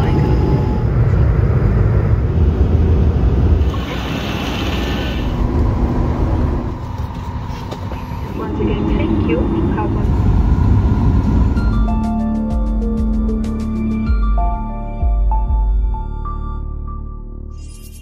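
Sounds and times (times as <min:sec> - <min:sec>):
jet engine rumble in cabin: 0:00.0 - 0:12.0
indistinct voices: 0:07.8 - 0:10.6.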